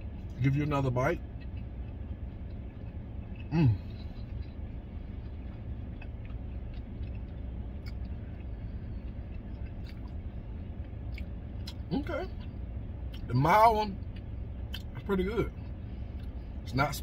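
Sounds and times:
vehicle idling rumble: 0.0s - 17.0s
closed-mouth chewing: 1.2s - 12.5s
person humming: 3.5s - 4.0s.

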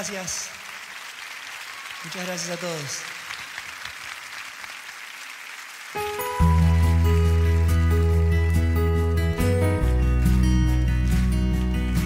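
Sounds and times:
audience applauding: 0.0s - 12.0s
band playing low bass and keyboards: 6.0s - 12.0s.

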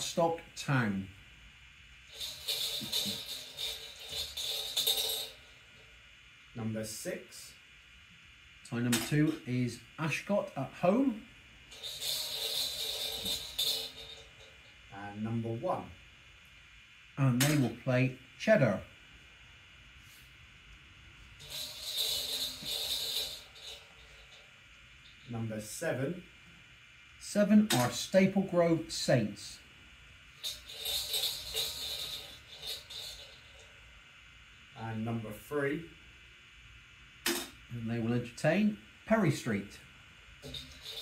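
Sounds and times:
balls rattling in metal cup: 2.1s - 5.8s, 11.6s - 14.9s, 21.2s - 25.3s, 30.3s - 33.9s, 40.4s - 41.0s.

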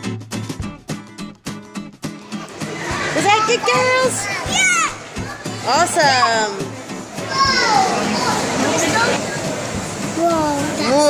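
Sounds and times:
background chatter: 2.3s - 11.0s
children's voices: 2.8s - 9.5s.

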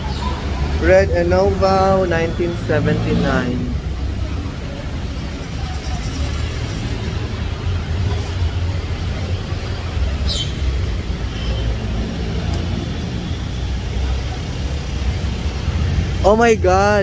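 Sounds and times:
road traffic rumble: 0.0s - 17.0s.

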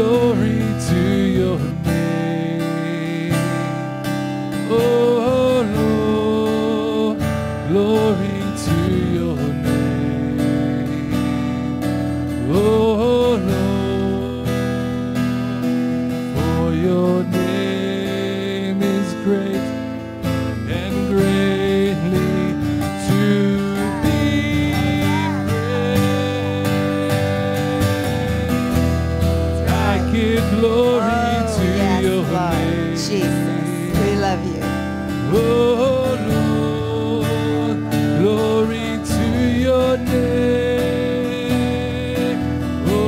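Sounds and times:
man singing: 0.0s - 15.4s, 16.2s - 43.0s
strummed acoustic guitar: 0.0s - 43.0s.

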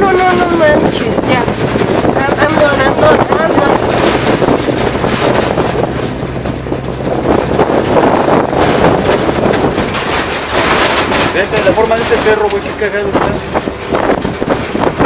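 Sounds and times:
truck engine running: 0.0s - 15.0s
wind buffeting microphone: 0.0s - 15.0s.

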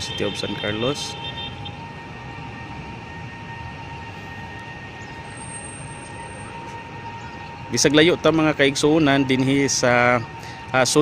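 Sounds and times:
city traffic rumble: 0.0s - 11.0s
thin steady whine: 0.0s - 11.0s.

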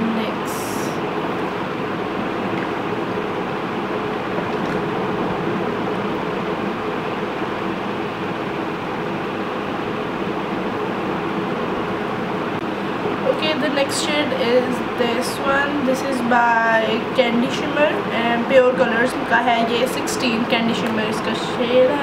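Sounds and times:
air conditioning hum: 0.0s - 22.0s.

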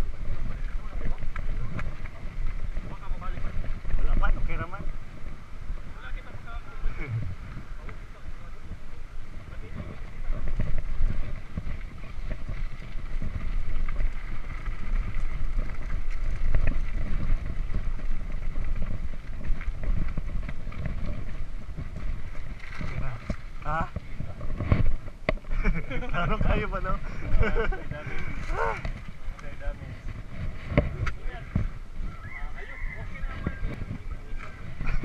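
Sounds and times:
bike rolling rumble and rattle: 0.0s - 35.0s
wind buffeting microphone: 0.0s - 35.0s.

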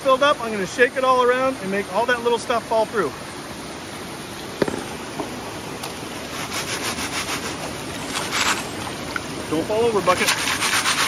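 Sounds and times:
stream rushing: 0.0s - 11.0s.

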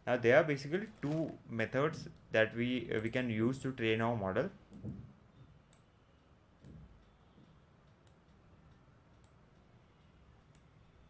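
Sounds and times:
faint sharp clicks: 6.6s - 10.7s.

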